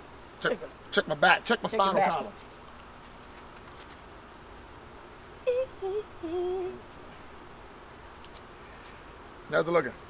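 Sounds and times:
short hummed voice sounds: 0:05.5 - 0:06.8.

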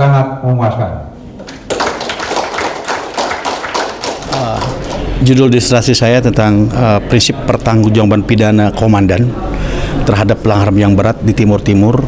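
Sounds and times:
crowd clapping: 0:01.4 - 0:05.3.

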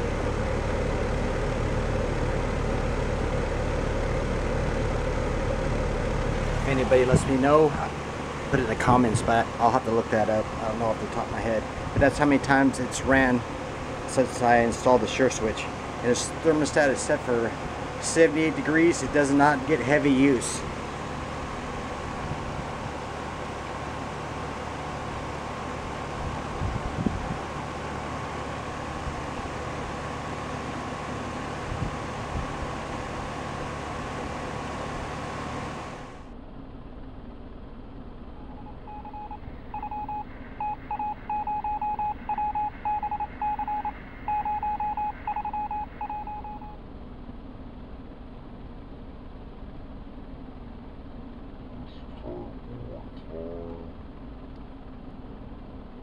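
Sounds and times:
air conditioner humming: 0:00.0 - 0:56.0
faint whine: 0:00.0 - 0:56.0
short electronic beeps: 0:38.4 - 0:46.8.

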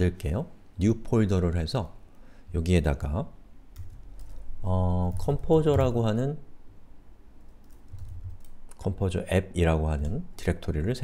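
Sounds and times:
computer keyboard keystrokes: 0:03.8 - 0:04.5, 0:07.5 - 0:08.8.

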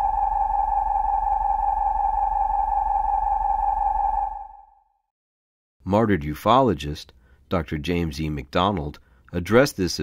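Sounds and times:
synthesized sci-fi hum: 0:00.0 - 0:04.9.

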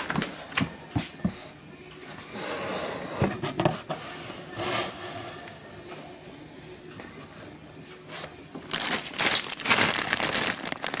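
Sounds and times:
packaging handled in cardboard box: 0:08.6 - 0:11.0
plastic bag rustling: 0:08.6 - 0:11.0.

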